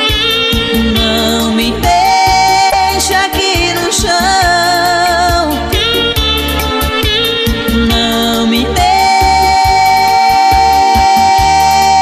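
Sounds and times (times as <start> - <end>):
live band instrumental music: 0.0 - 12.0
long held lead note: 0.0 - 12.0.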